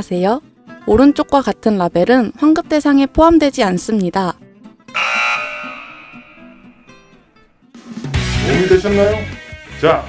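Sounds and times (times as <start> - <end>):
light background music: 0.0 - 10.0
cartoon wrong answer buzzer: 4.9 - 6.9.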